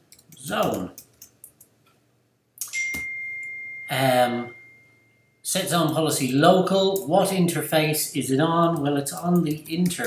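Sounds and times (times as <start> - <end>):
computer keystrokes: 0.1 - 1.7.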